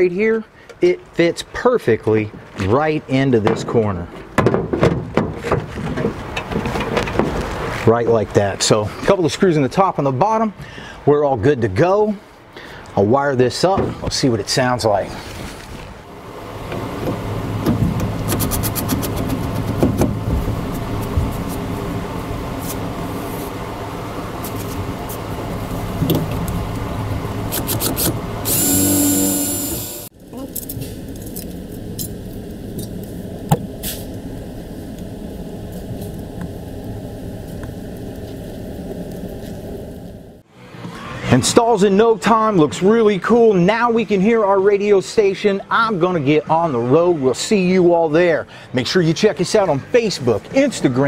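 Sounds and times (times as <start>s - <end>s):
low hum: 16.1s - 40.4s
thin steady drone: 28.4s - 30.1s
cordless drill whining: 28.5s - 30.1s.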